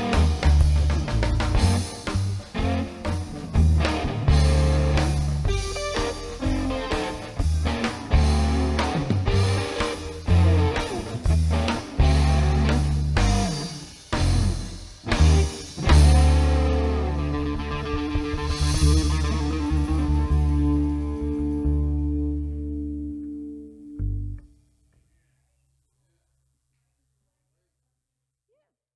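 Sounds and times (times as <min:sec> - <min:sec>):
rock band playing: 0:00.0 - 0:24.3.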